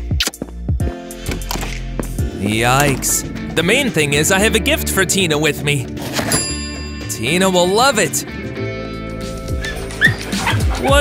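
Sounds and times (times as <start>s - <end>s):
background music: 0.0s - 11.0s
dog barking: 9.6s - 10.8s.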